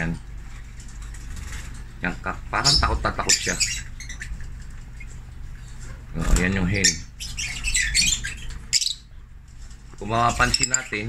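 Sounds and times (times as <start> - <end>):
lovebirds squawking: 2.3 - 5.2, 6.7 - 9.2, 10.1 - 11.0.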